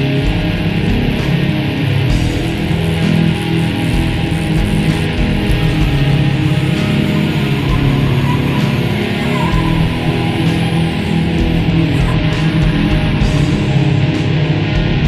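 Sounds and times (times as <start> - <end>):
black metal music: 0.0 - 15.0.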